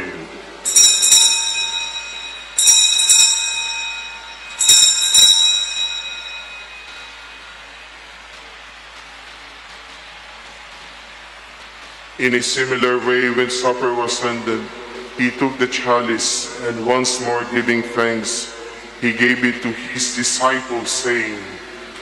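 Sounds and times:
altar bells ringing: 0.6s - 8.0s.

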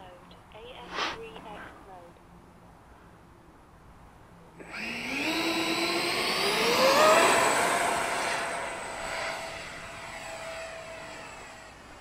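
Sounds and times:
electric ducted fans whining: 0.0s - 12.0s.

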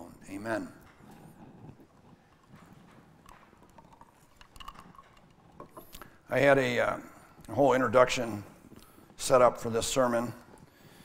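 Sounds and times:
faint clicks and knocks: 0.8s - 6.2s.

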